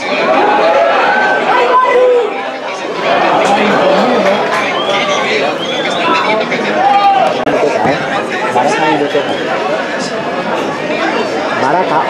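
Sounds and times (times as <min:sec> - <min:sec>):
spectators talking: 0:00.0 - 0:12.0.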